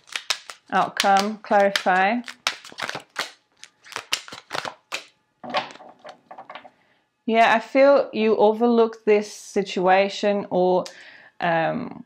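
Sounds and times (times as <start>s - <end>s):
cards snapping and flicking: 0.0s - 5.1s.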